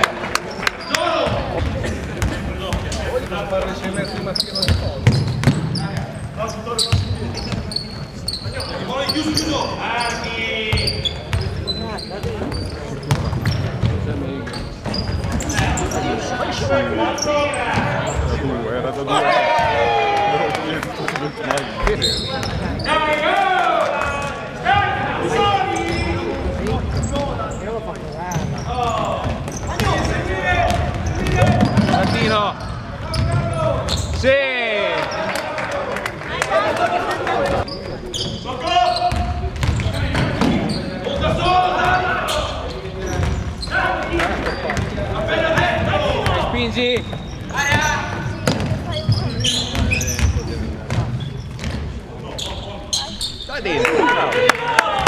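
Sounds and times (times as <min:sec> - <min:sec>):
sneakers squeaking: 0:00.4 - 0:18.5, 0:21.0 - 0:23.1, 0:25.2 - 0:34.3, 0:37.3 - 0:53.8
players shouting calls: 0:19.1 - 0:21.2, 0:21.8 - 0:27.6, 0:38.4 - 0:42.8, 0:43.6 - 0:50.4.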